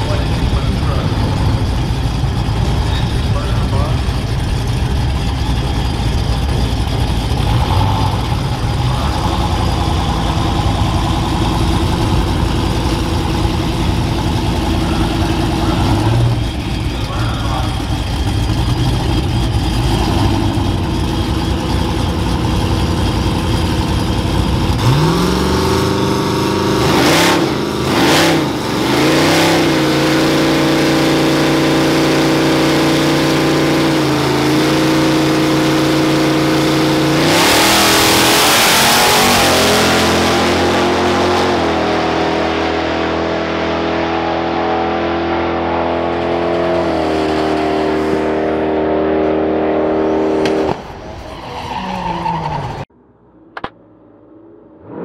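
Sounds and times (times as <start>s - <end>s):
truck engines idling: 0.0s - 43.8s, 49.9s - 53.8s
engine revving: 0.0s - 51.0s
trucks launching: 0.0s - 55.0s.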